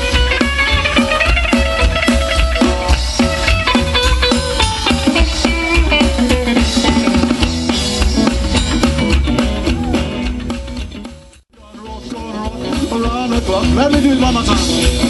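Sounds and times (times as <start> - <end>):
live band playing instrumental: 0.0 - 15.0.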